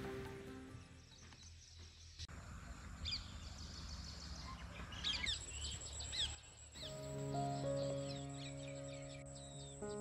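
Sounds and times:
soft background music: 0:00.0 - 0:01.3, 0:06.8 - 0:10.0
low outdoor background hum: 0:00.7 - 0:10.0
small birds chirping: 0:00.7 - 0:10.0.

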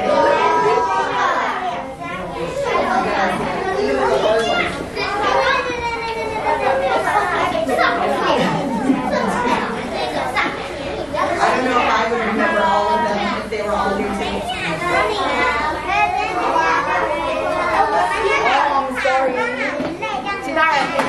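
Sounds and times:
children chattering: 0:00.0 - 0:21.0.

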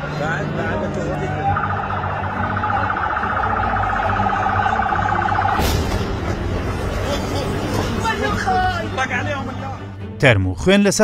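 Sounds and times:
crowded street noise: 0:00.0 - 0:09.0
siren with rapid warbling flutter: 0:01.4 - 0:06.3.

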